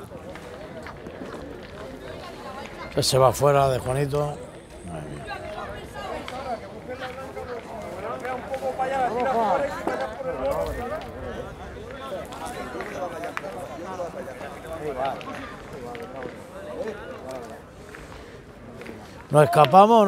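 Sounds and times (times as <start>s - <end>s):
people talking: 0.0s - 20.0s.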